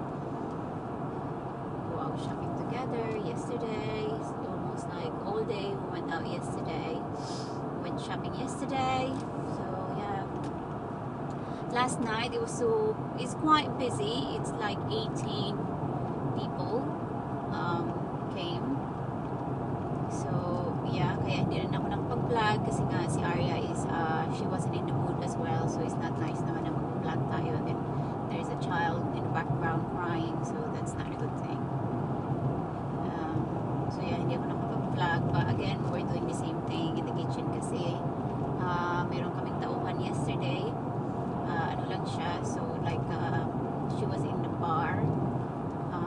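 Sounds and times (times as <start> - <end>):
car engine and tyre noise: 0.0 - 46.0.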